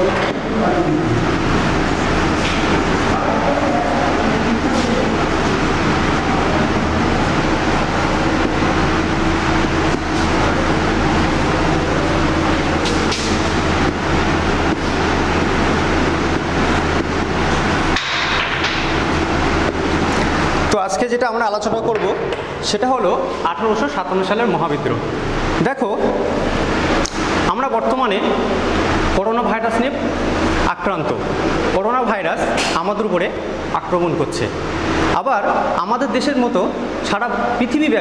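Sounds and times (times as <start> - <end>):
mechanical hum and hiss: 0.0 - 38.0.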